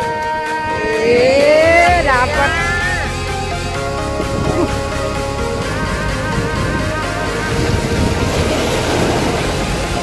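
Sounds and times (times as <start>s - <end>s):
background music: 0.0s - 10.0s
sea waves surging against rocks: 0.6s - 10.0s.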